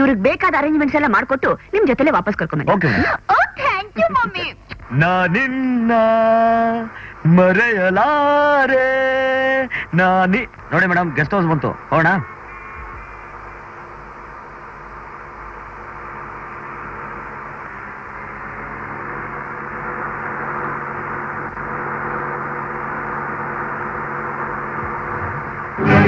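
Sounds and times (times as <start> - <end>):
car running noise from inside: 14.7 - 26.0.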